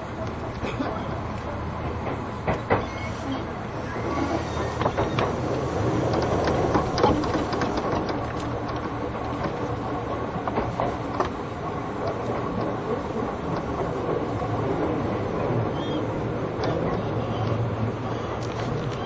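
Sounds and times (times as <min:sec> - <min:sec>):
electric train rolling: 0:00.0 - 0:19.0
wheels clicking over rail joints: 0:00.0 - 0:19.0.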